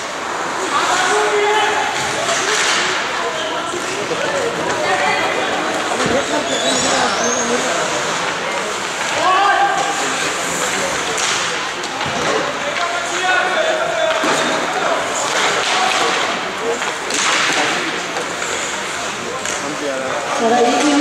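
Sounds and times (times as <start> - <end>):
indistinct shouting voices echoing: 0.5 - 8.2, 9.0 - 10.3.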